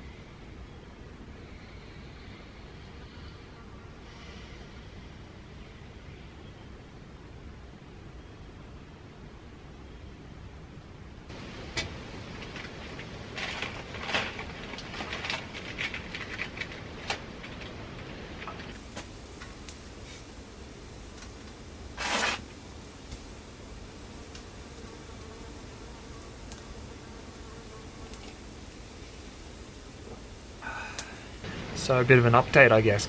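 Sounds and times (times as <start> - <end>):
gear rustling and clicking: 12.3 - 19.8.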